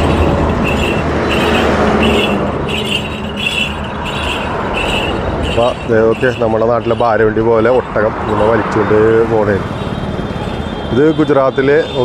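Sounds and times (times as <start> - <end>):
low engine hum: 0.0 - 11.0
road and traffic noise: 0.0 - 12.0
wind: 0.0 - 12.0.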